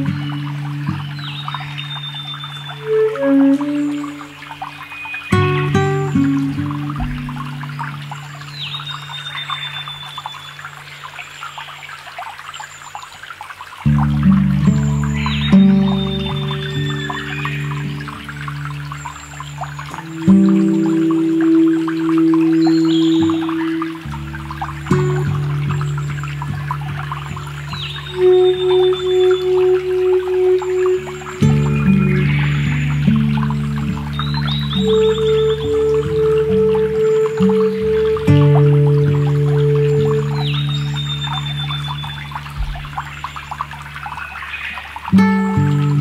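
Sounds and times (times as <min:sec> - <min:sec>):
stream trickling over stones: 0:00.0 - 0:46.0.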